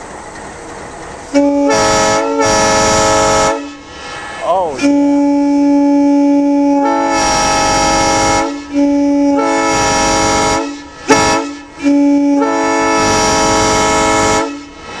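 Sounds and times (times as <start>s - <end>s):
locomotive air horn blasts: 1.3s - 4.0s, 4.7s - 14.8s.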